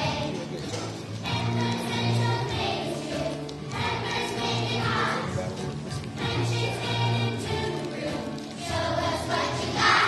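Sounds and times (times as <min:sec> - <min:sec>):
musical accompaniment: 0:00.0 - 0:10.0
children singing in unison: 0:01.2 - 0:05.4, 0:06.2 - 0:10.0.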